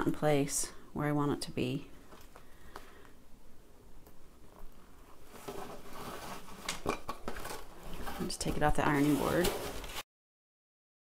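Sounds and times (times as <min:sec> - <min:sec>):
fabric rustling and scuffing: 0:04.6 - 0:10.0.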